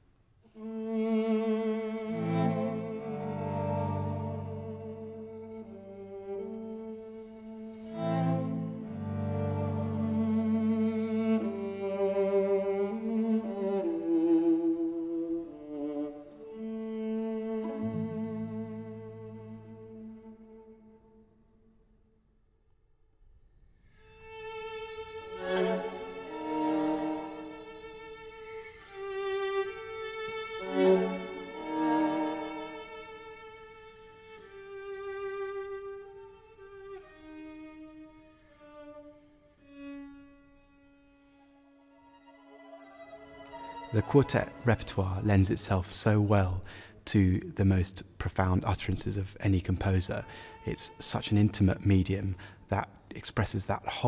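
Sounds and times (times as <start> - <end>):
string quartet long held notes: 0.5 - 21.5, 24.0 - 54.0.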